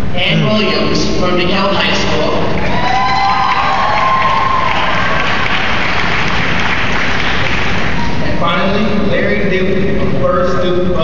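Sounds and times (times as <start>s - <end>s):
audience applauding: 2.5s - 8.2s
people cheering: 2.6s - 8.2s.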